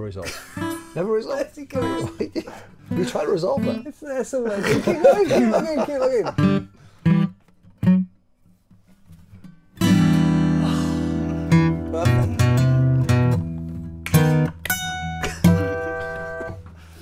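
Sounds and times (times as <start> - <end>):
acoustic guitars strumming chords: 0.4 - 17.0.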